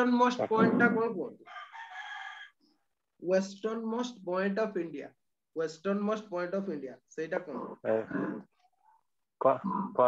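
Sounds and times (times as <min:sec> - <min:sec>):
rooster crowing: 0:01.5 - 0:02.6.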